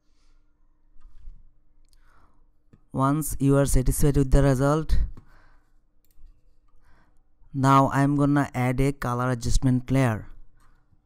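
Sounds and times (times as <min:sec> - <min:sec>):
soft breath: 0:00.0 - 0:02.7, 0:05.2 - 0:07.4.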